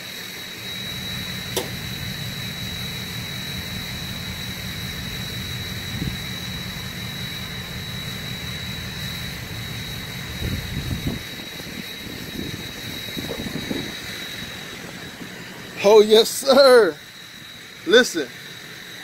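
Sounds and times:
low rumble: 0.8s - 15.8s
hood latch click: 1.5s - 1.8s.

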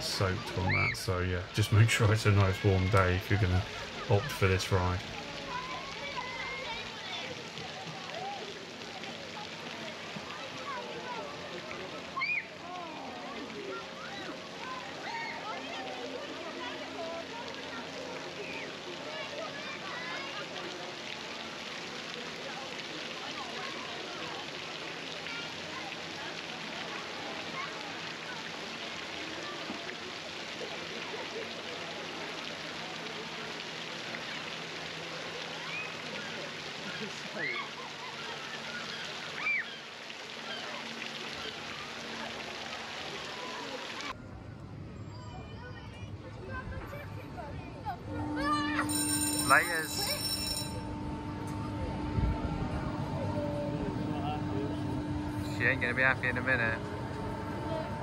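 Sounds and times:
splashing running water: 0.0s - 44.2s
low steady hum: 46.0s - 58.0s.

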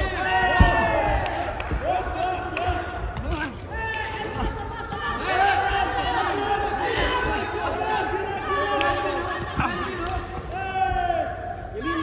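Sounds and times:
people shouting: 0.0s - 12.0s.

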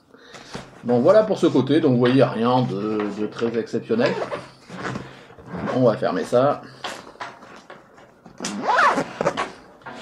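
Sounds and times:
backpack zip being pulled shut: 8.4s - 9.4s.

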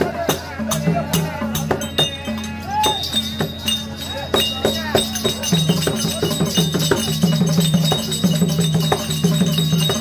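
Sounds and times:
chiming percussion beat: 0.0s - 10.0s.

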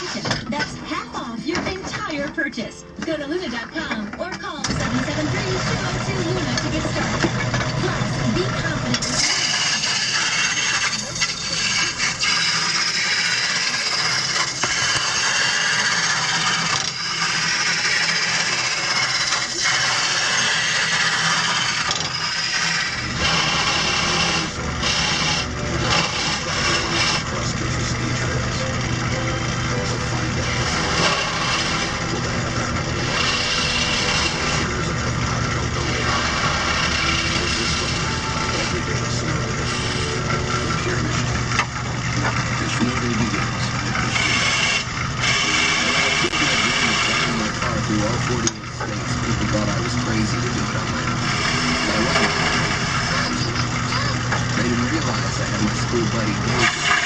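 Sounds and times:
gouge cutting spinning wood: 0.0s - 2.1s, 3.5s - 57.0s
lathe motor hum: 3.0s - 57.0s.

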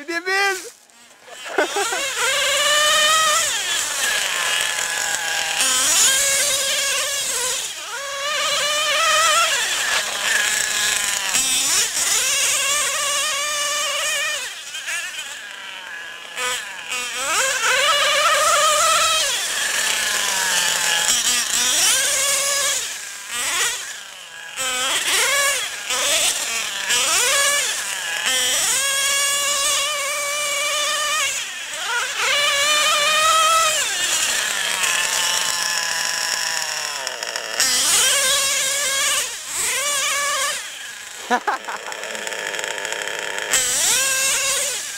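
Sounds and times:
rc truck engine revving: 0.0s - 44.9s.

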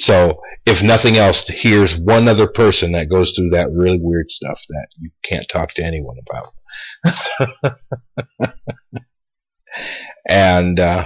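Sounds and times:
man laughing: 6.8s - 9.0s.

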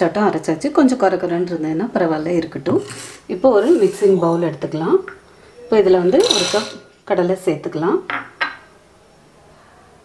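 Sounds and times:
person talking: 0.0s - 8.0s.

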